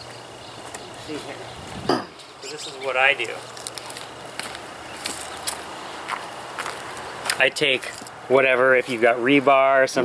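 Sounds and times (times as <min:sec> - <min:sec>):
faint outdoor hiss: 0:00.0 - 0:10.0
footsteps on stepping stones: 0:03.4 - 0:08.2.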